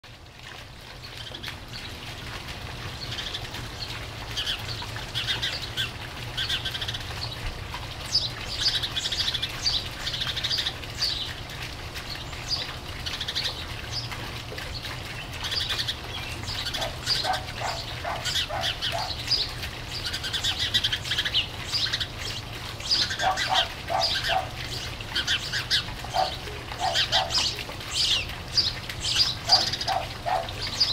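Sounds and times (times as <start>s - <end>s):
birds chirping: 12.0s - 30.9s.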